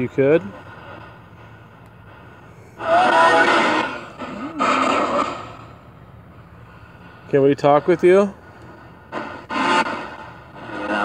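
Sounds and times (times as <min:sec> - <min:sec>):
radio static bursts: 0:02.0 - 0:05.8, 0:07.6 - 0:11.0.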